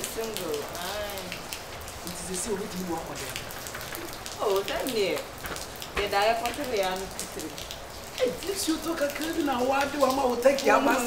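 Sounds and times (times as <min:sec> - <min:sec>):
rain spattering on surfaces: 0:00.0 - 0:11.0
man talking: 0:02.0 - 0:03.4.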